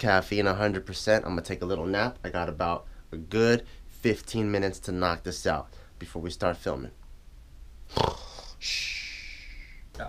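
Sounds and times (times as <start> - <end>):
long hissing breath out: 8.0 - 9.9.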